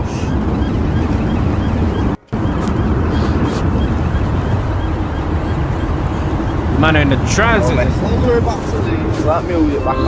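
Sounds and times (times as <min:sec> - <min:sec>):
road and wind noise in van: 0:00.0 - 0:10.0.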